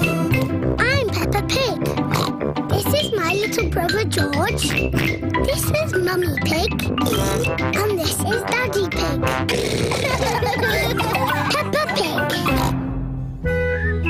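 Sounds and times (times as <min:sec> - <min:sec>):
cartoon theme tune: 0:00.0 - 0:14.0
young girl speaking: 0:00.8 - 0:02.0, 0:02.7 - 0:04.7, 0:05.4 - 0:06.9, 0:07.8 - 0:09.2, 0:11.4 - 0:12.6
comic pig snorts: 0:02.1 - 0:02.4, 0:04.6 - 0:05.2, 0:07.0 - 0:08.2, 0:09.3 - 0:11.6, 0:12.3 - 0:12.8.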